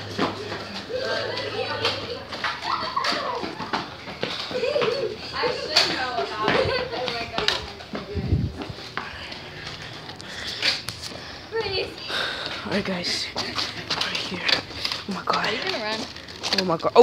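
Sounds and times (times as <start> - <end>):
children's voices at play: 0.4 - 8.9.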